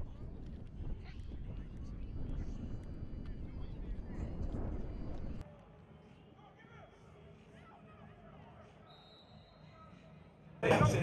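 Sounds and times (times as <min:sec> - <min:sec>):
wind rumbling on microphone: 0:00.0 - 0:05.4.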